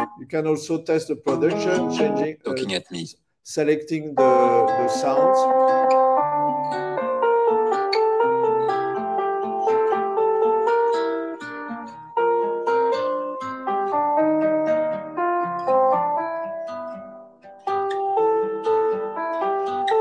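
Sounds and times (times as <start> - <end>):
plucked guitar-like jazz melody: 0.0 - 0.4, 1.2 - 3.0, 4.2 - 20.0.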